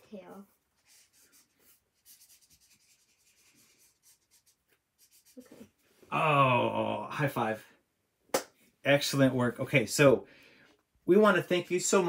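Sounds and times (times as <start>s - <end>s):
marker scratching on paper: 0.0s - 5.8s.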